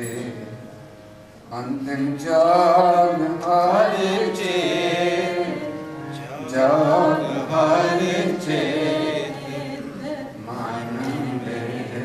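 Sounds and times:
man singing devotional chant: 0.0s - 0.7s, 1.5s - 12.0s.

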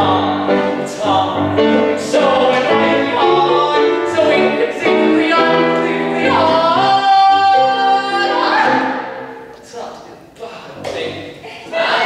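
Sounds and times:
man singing: 0.0s - 8.9s
grand piano accompaniment: 0.0s - 9.6s.

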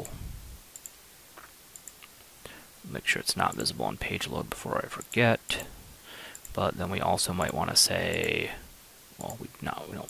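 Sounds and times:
computer mouse clicks: 0.7s - 2.3s, 6.3s - 6.6s.

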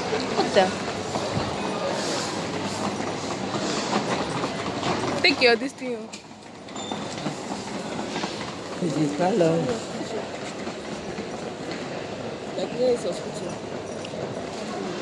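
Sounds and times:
airport terminal hubbub: 0.0s - 15.0s.

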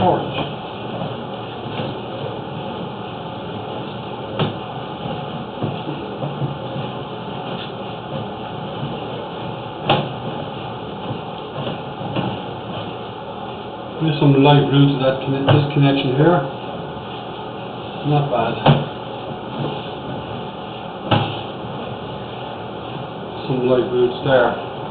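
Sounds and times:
sharp knocks in pipe: 9.8s - 10.2s, 18.6s - 19.0s.

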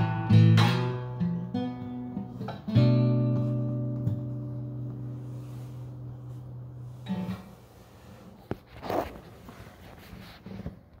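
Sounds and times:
acoustic guitar chord ringing: 0.0s - 8.1s.

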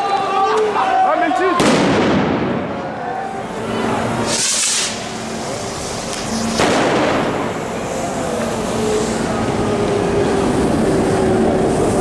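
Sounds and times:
short high hiss: 4.2s - 6.6s.

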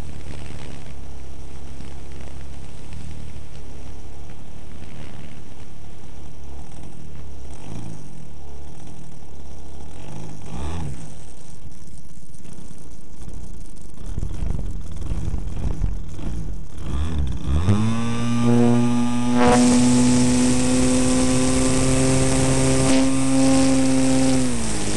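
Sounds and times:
model plane engine revving: 6.5s - 11.6s, 14.0s - 24.9s.

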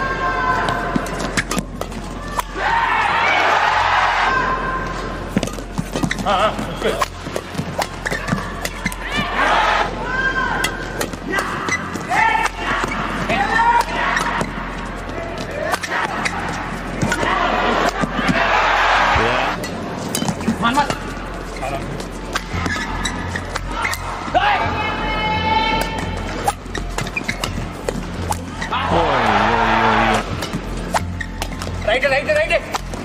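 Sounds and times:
rackets striking shuttlecock: 0.7s - 2.6s, 5.3s - 9.4s, 13.6s - 14.6s, 15.6s - 18.3s, 22.2s - 24.1s, 25.8s - 28.6s, 30.1s - 31.8s, 32.4s - 33.0s
crowd cheering: 2.3s - 4.7s, 8.4s - 10.6s, 15.7s - 19.6s, 28.7s - 30.4s
shoes squeaking on court: 5.2s - 9.4s, 10.6s - 17.3s, 19.5s - 24.3s, 25.8s - 29.2s, 30.2s - 33.0s.

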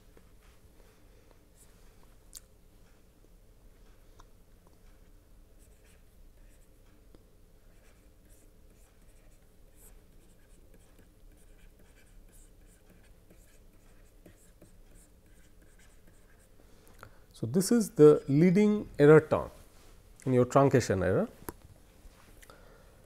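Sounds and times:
low steady hum: 0.0s - 23.0s
stylus scratching on a pen tablet: 5.6s - 6.8s, 7.7s - 16.5s.

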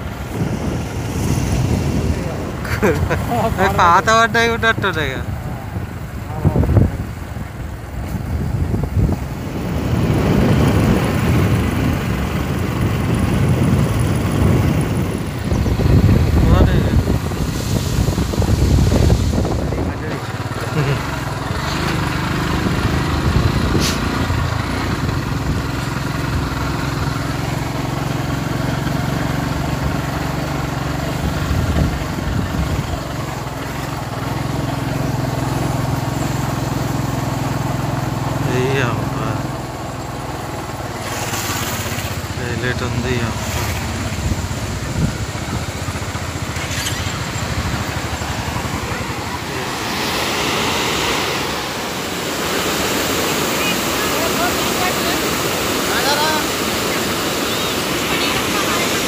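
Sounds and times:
wind rumble on microphone: 0.0s - 41.0s, 41.8s - 52.0s
vehicle engine running: 0.0s - 59.0s.

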